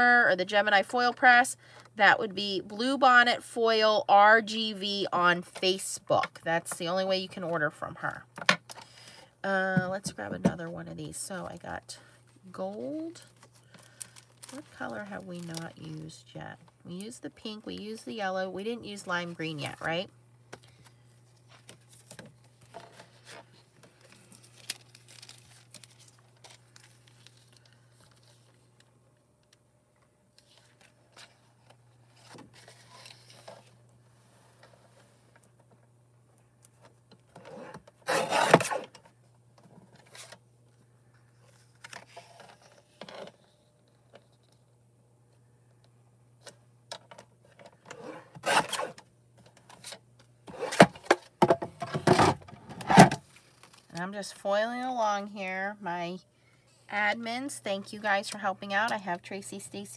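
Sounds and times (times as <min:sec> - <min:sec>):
paper rustling: 0:21.4 - 0:28.7
paper trimmer blade scraping: 0:38.0 - 0:38.9, 0:47.9 - 0:49.0.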